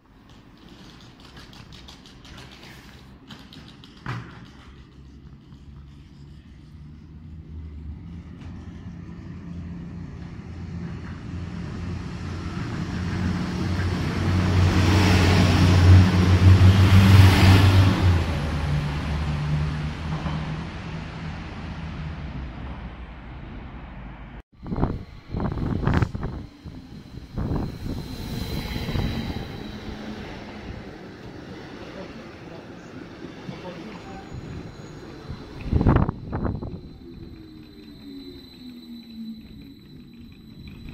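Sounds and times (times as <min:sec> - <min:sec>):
train passing: 0:04.6 - 0:40.9
faint high squeal: 0:24.6 - 0:32.0, 0:32.8 - 0:40.9.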